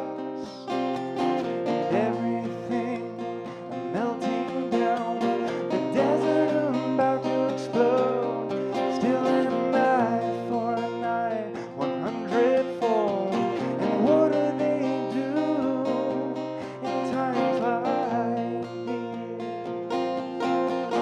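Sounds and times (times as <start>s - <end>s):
man singing: 0.0s - 21.0s
strummed acoustic guitar: 0.0s - 21.0s.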